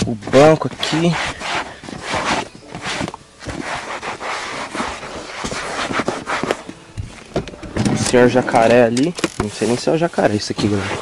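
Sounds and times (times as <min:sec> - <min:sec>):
towel rubbing leather seat: 0:00.2 - 0:06.7, 0:09.5 - 0:11.0.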